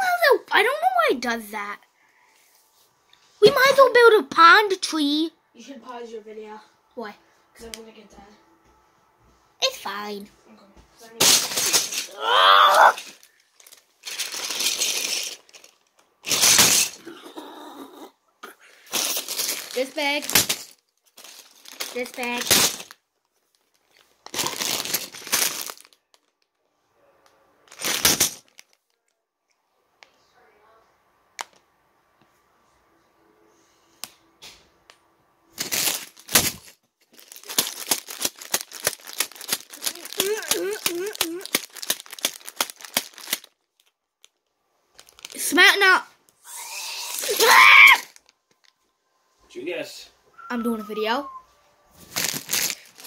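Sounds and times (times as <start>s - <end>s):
plastic bag crinkling: 11.2s - 12.2s, 12.9s - 17.1s, 18.8s - 26.5s, 27.7s - 29.0s, 35.6s - 45.6s, 52.0s - 53.0s
person yelling: 12.1s - 13.0s, 40.1s - 41.5s, 46.9s - 48.1s.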